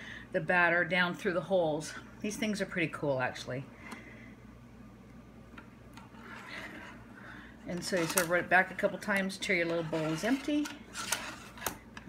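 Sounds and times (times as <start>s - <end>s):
low steady hum: 0.0s - 12.0s
metal hopper scraping on plate: 7.7s - 8.8s, 9.5s - 11.8s.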